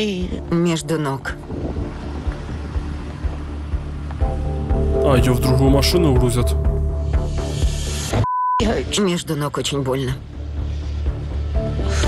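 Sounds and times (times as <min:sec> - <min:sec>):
background music: 0:00.0 - 0:12.0
censor bleep: 0:08.2 - 0:09.0.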